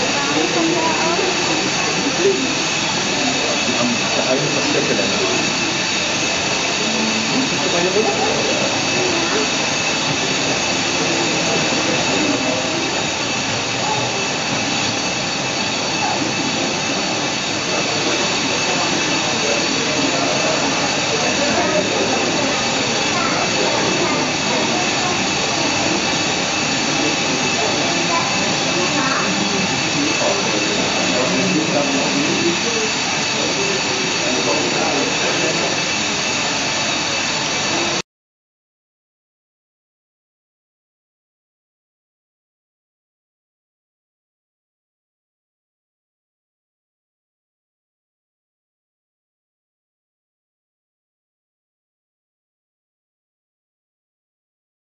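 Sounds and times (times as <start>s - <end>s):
jet engine whine: 0.0s - 38.0s
murmur of voices: 0.0s - 38.0s.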